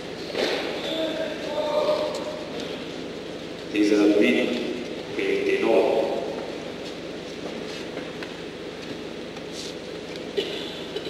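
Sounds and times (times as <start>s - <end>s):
man speaking: 3.7s - 6.3s.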